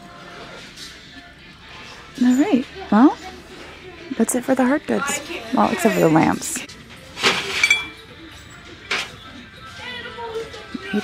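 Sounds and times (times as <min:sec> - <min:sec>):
ceramic mug clinking: 0:07.6 - 0:08.0.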